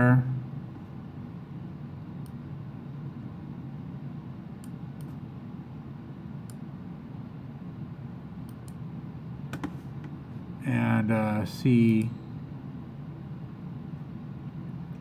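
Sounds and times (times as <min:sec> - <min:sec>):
low room hum: 0:00.0 - 0:15.0
keyboard and mouse clicks: 0:09.5 - 0:10.2.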